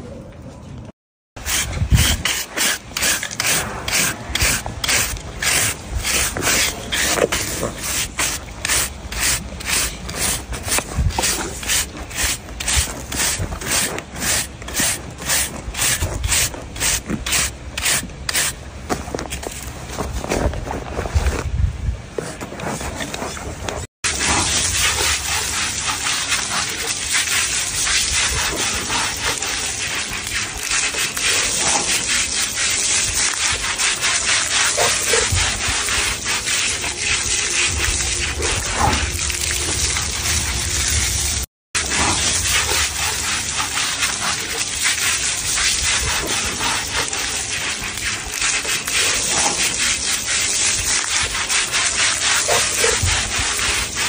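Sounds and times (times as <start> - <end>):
water spraying from a hose: 1.4 - 19.7, 24.0 - 54.0.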